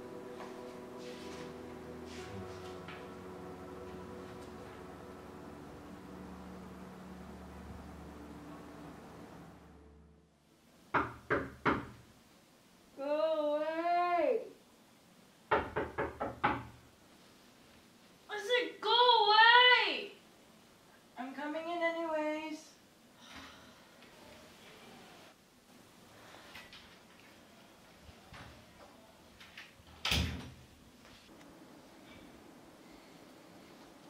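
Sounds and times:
knocking on a door: 0:11.0 - 0:12.0, 0:15.5 - 0:16.8.

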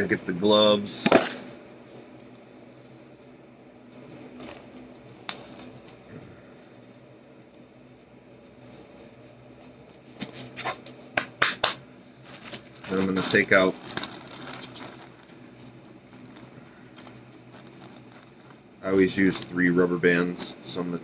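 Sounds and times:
rubber gloves rustling: 0:00.0 - 0:07.6, 0:08.2 - 0:11.4, 0:12.1 - 0:19.6
faint steady hum: 0:00.0 - 0:21.0.

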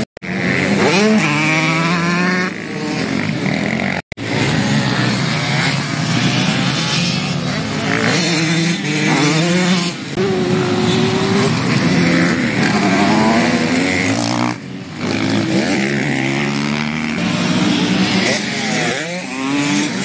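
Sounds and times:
motocross bike engines revving: 0:00.0 - 0:20.0.

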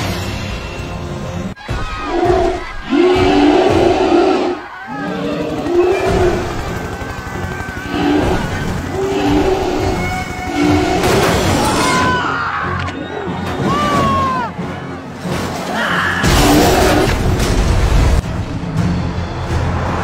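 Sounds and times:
dramatic orchestral score: 0:00.0 - 0:20.0
giant creature roaring: 0:02.1 - 0:06.4, 0:07.8 - 0:11.2
helicopter rotor chopping: 0:03.4 - 0:11.1.

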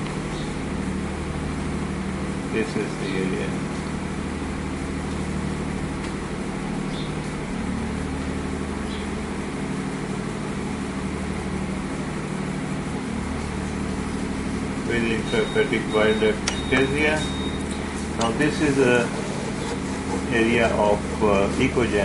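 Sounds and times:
low machine hum: 0:00.0 - 0:22.0.

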